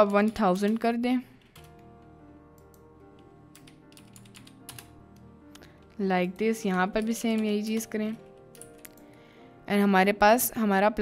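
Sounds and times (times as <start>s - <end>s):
quiet music of sustained tones: 0.0s - 11.0s
keyboard keystrokes: 2.6s - 5.3s, 6.3s - 9.1s.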